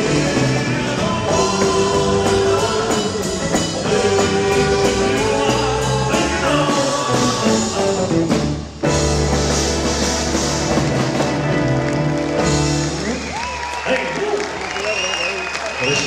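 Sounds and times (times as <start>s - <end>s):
live rock band playing: 0.0s - 13.8s
audience applause and cheering: 9.7s - 16.0s.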